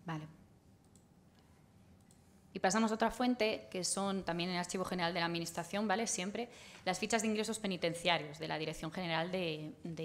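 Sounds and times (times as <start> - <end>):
woman speaking: 0.0 - 0.4, 2.6 - 10.0.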